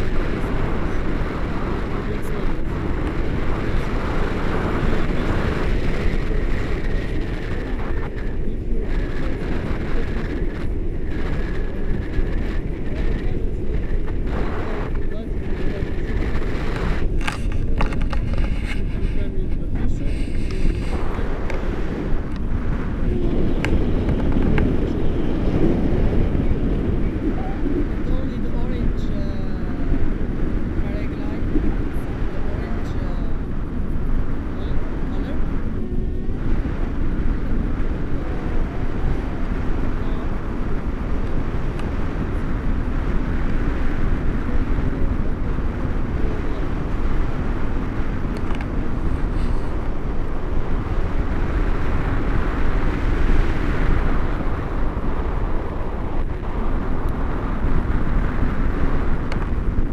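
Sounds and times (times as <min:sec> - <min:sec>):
wind rumbling over microphone: 0:00.0 - 0:59.9.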